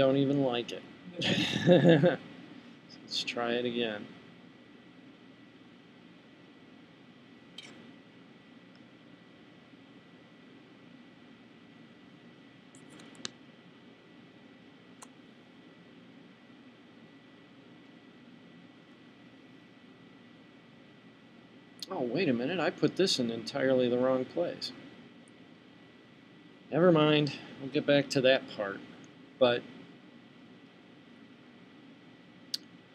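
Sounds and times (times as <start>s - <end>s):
faint high-pitched whine: 0.0s - 32.9s
soft clicks: 7.5s - 7.8s, 12.7s - 13.4s, 15.0s - 15.2s.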